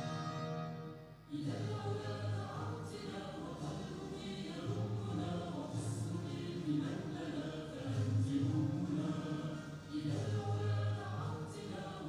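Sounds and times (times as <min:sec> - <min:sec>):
instrumental accompaniment: 0:00.0 - 0:01.3
choir singing an anthem: 0:01.3 - 0:12.0.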